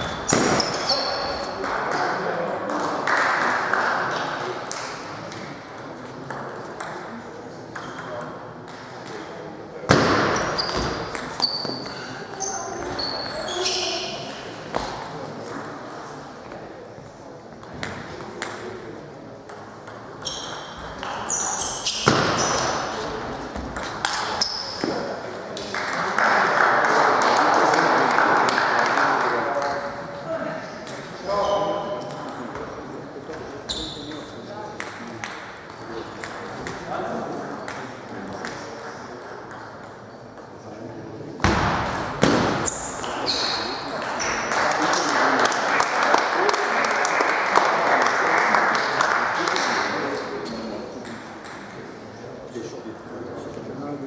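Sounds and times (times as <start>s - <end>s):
voices in hall: 0.0s - 54.0s.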